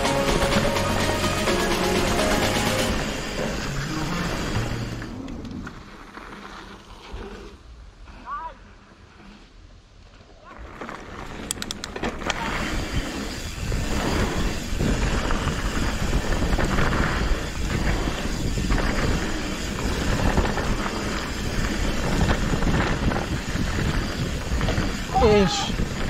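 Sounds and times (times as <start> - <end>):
mountain bike ride noise: 0.0 - 26.0
wind rushing on microphone: 11.5 - 26.0.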